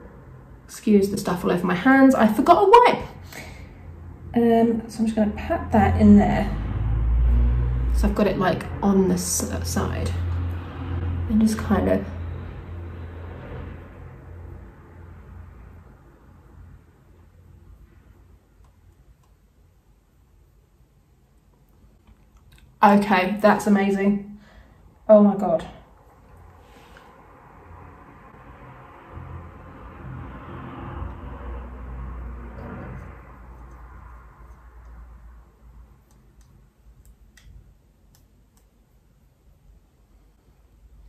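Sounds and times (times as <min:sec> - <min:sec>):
low hum: 0:03.1 - 0:41.0.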